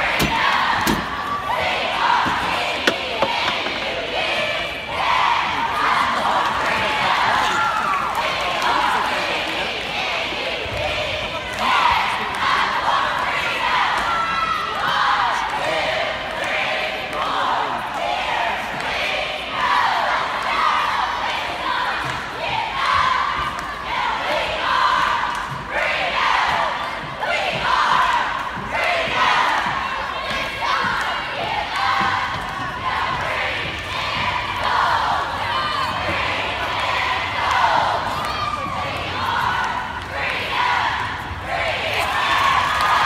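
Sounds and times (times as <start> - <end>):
crowd noise: 0.0 - 43.0.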